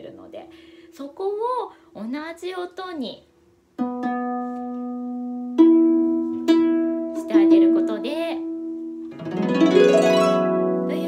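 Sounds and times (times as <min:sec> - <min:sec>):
harp notes plucked: 0:03.8 - 0:11.0.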